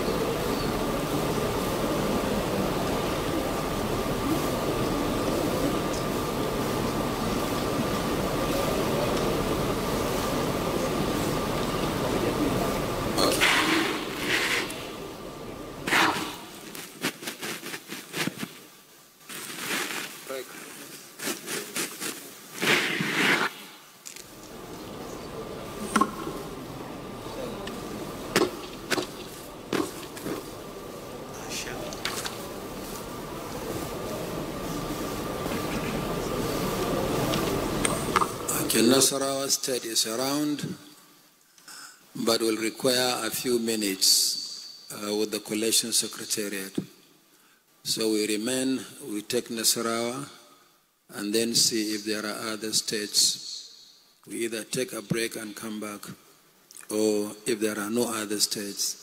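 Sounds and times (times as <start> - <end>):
indistinct murmur: 0.0 - 17.6, 22.5 - 39.2
steady hall hum: 0.0 - 59.0.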